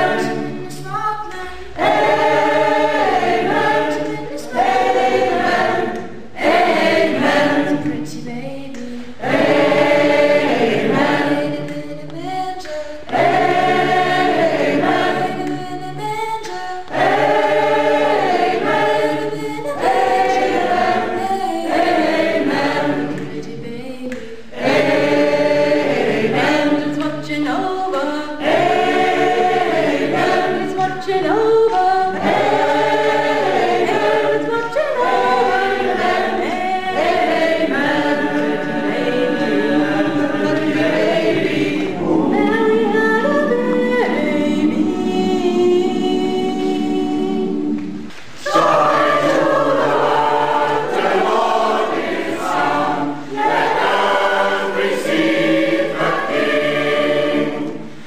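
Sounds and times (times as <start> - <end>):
choir singing: 0.0 - 58.0.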